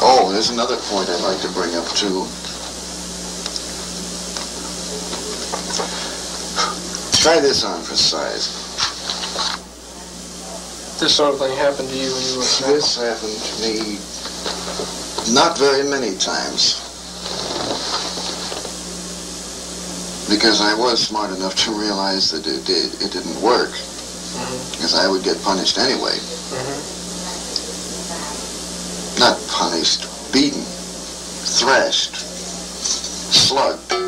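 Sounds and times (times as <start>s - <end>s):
constant low hum: 0.0s - 34.0s.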